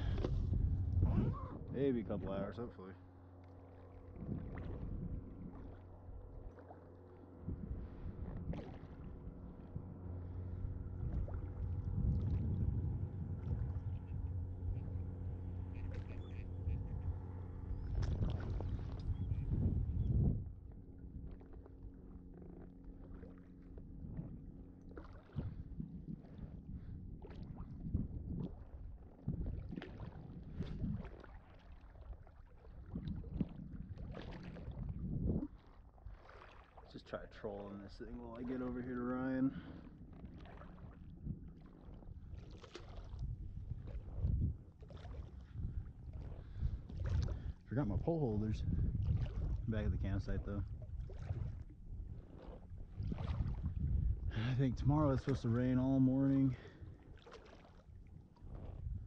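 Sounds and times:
wind rumbling on microphone: 0:00.0 - 0:03.0, 0:04.1 - 0:06.6, 0:07.3 - 0:59.0
faint steady hum: 0:00.0 - 0:36.2
water sloshing and splashing: 0:00.0 - 0:59.0.

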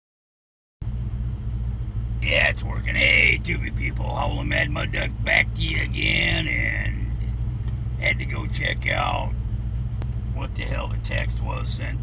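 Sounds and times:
vehicle engine rumble: 0:00.8 - 0:12.0.

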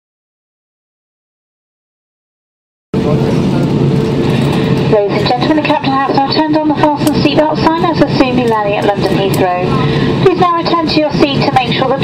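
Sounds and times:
airplane cabin drone: 0:03.0 - 0:12.0
cabin crew announcement: 0:03.0 - 0:12.0.

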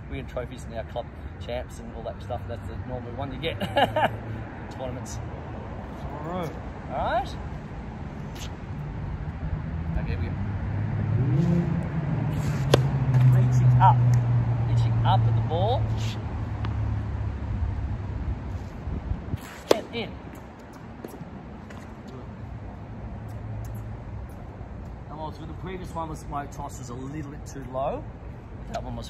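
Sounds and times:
tennis ball struck: 0:12.3 - 0:14.2, 0:19.4 - 0:21.8.

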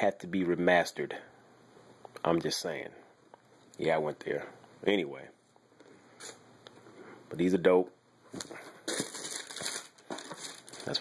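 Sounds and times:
tissue paper and cardboard box rustling: 0:08.4 - 0:11.0.

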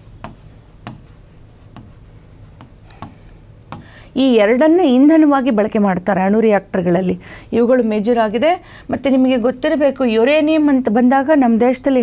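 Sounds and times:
pen scraping on board: 0:00.0 - 0:03.8
pen tapping on board: 0:00.2 - 0:03.9.

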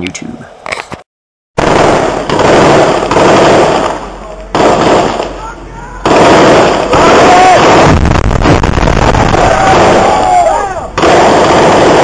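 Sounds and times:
distorted rapid gunfire: 0:01.6 - 0:05.3, 0:06.0 - 0:10.2, 0:11.0 - 0:12.0.

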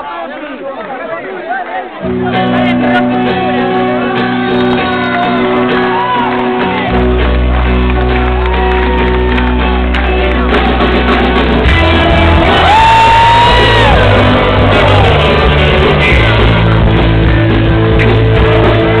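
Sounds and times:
live rock band playing: 0:02.0 - 0:19.0
deep bass: 0:06.9 - 0:19.0
people shouting: 0:11.6 - 0:16.4.

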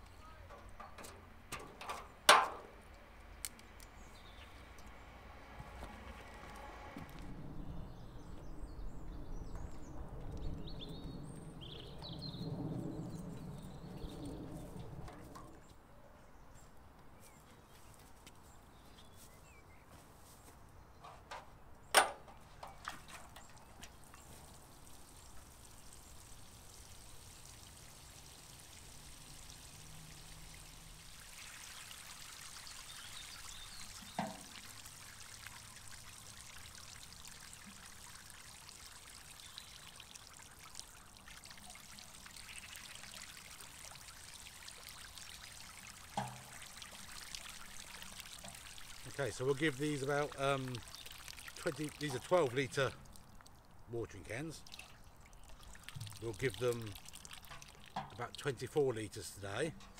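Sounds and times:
water pouring from watering can: 0:00.0 - 0:15.8, 0:22.3 - 0:59.9.

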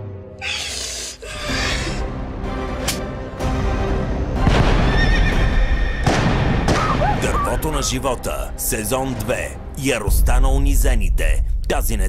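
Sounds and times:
horse neighing: 0:00.4 - 0:02.0.

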